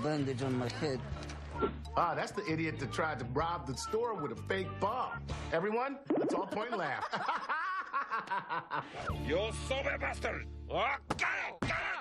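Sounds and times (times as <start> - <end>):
people laughing: 6.2 - 9.1.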